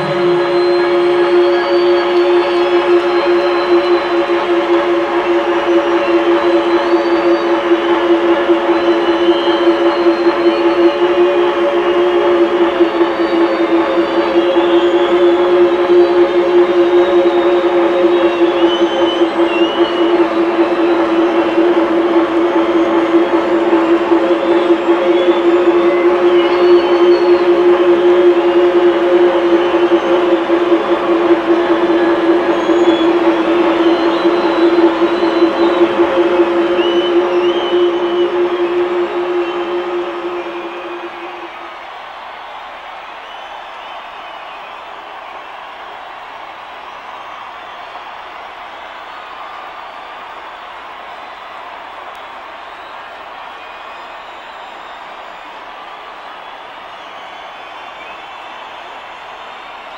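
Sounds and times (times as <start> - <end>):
electronic synth drone: 0.0 - 41.9.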